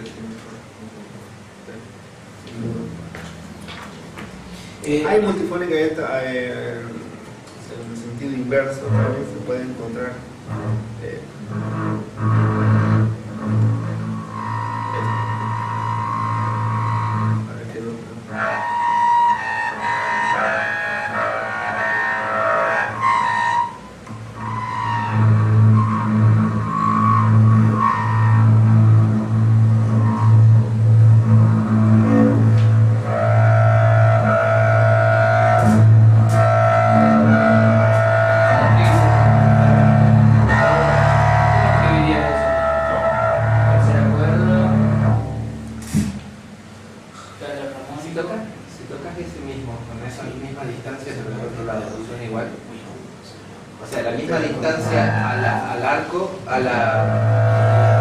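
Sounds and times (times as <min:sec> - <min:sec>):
bowed double bass: 0:00.0 - 0:58.0.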